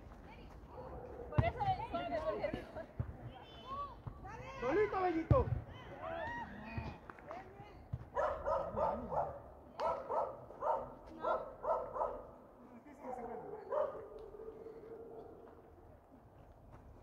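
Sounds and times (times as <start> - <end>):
dog barking: 8.1 - 12.3, 13.2 - 15.4.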